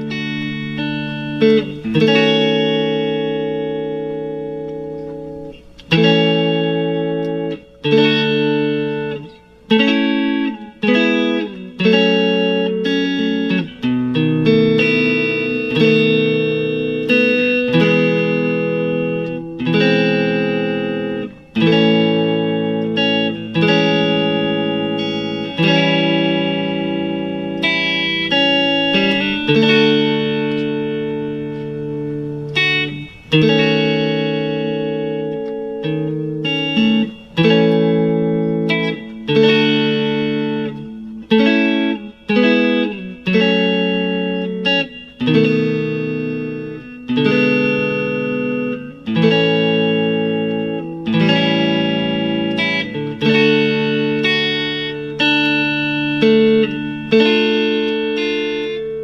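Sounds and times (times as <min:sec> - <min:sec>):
electric guitar chords: 0:00.0 - 0:59.0.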